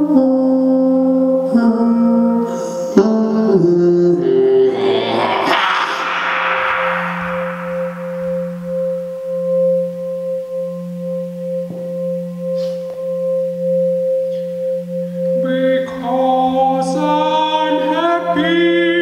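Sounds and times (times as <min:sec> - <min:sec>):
pulsing two-tone drone: 0:04.2 - 0:09.6
person speaking: 0:04.4 - 0:08.0
noisy wash: 0:04.4 - 0:09.2.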